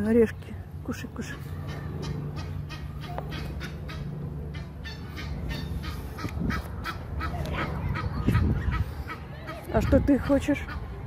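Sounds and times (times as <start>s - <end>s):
low steady hum: 0.0s - 11.0s
geese honking: 1.4s - 10.9s.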